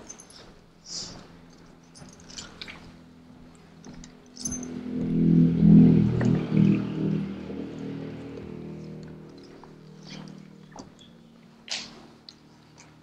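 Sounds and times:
sustained low chords music: 4.0s - 12.3s.

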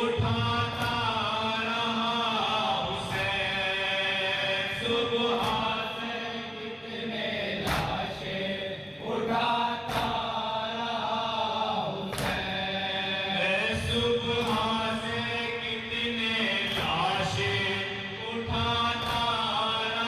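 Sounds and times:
men chanting a lament in unison: 0.0s - 20.0s.

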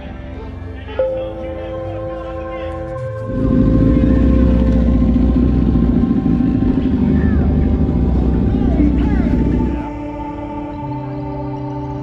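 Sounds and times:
faint background music: 0.0s - 12.0s
vehicle engine running: 2.9s - 10.1s.

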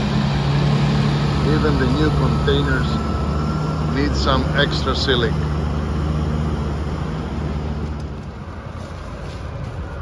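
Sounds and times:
engine idling: 0.0s - 10.0s
faint outdoor noise: 0.0s - 10.0s.

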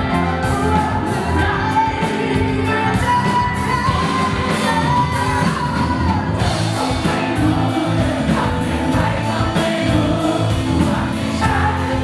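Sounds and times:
woman singing into a microphone: 0.0s - 8.6s
bass guitar: 0.0s - 12.0s
drum kit: 0.0s - 12.0s
electric guitar: 0.0s - 12.0s.

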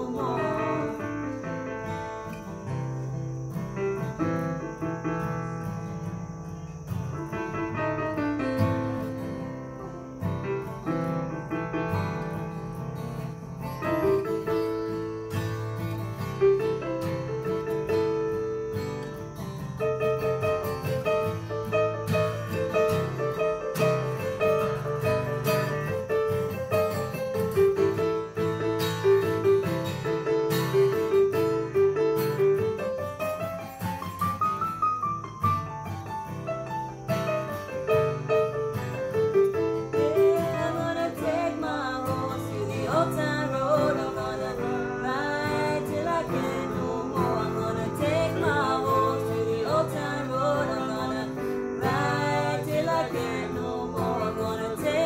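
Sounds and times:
person singing: 0.0s - 1.7s, 39.8s - 55.0s
strummed acoustic guitar: 0.0s - 55.0s.

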